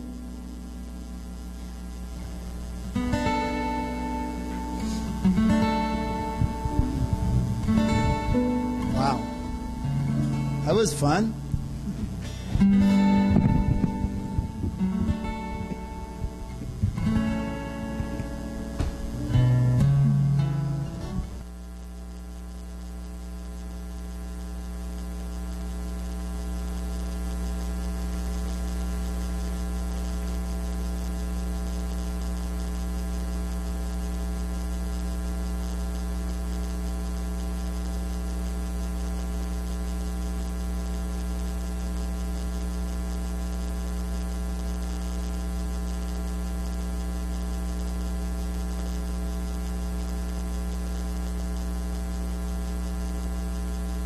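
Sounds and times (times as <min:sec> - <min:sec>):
buzzy mains hum: 0:00.0 - 0:54.0.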